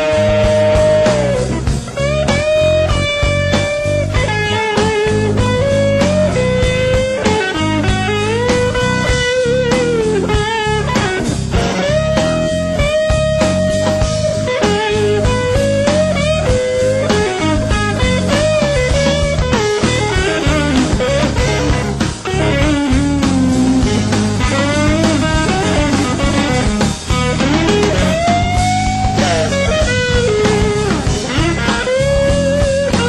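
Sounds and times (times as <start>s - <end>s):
blues-rock band playing: 0.0s - 33.0s
lead guitar with bent notes: 0.0s - 33.0s.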